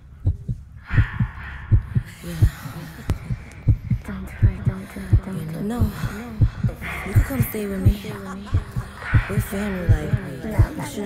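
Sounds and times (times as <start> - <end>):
heartbeat double thumps: 0.0 - 11.0.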